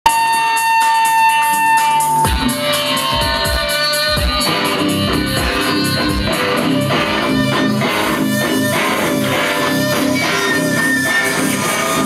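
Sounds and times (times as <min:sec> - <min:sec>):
electric guitar feedback tone: 0:00.0 - 0:12.0.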